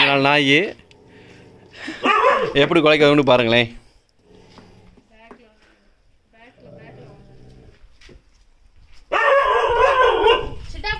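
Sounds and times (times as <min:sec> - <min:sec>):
puppy yapping and barking: 0:09.1 - 0:10.5.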